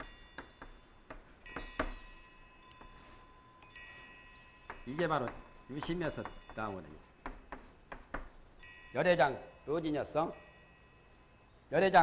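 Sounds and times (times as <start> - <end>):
chalk squeaking on blackboard: 0.0 - 1.9, 2.8 - 3.3, 4.7 - 8.3
chalk tapping on blackboard: 0.0 - 2.0, 2.8 - 3.2, 4.7 - 8.3.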